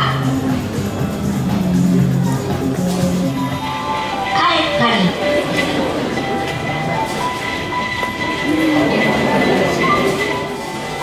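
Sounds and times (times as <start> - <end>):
faint music tones: 0.0 - 11.0.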